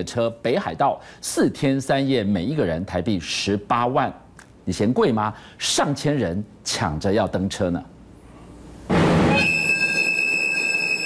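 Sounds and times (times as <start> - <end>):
train wheels squealing on rails: 9.3 - 11.0.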